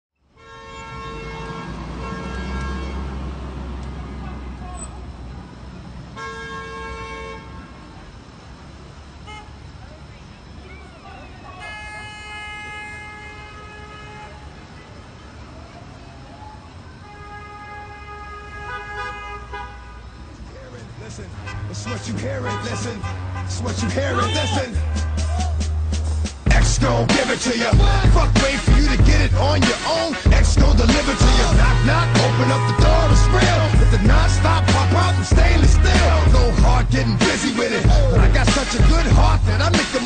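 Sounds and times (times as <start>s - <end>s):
car horns honking: 0.2s - 5.2s, 6.0s - 8.2s, 9.0s - 9.8s, 11.4s - 14.8s, 17.0s - 40.0s
street traffic noise: 0.2s - 40.0s.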